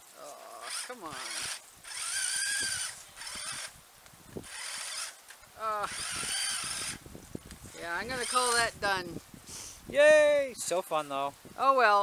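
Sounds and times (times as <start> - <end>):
toy electric motor whining: 0.6 - 3.8, 4.4 - 7.0, 8.0 - 8.8.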